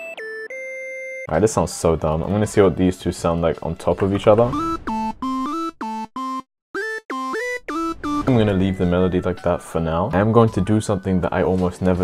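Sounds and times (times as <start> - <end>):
synth lead melody: 4.1 - 9.8.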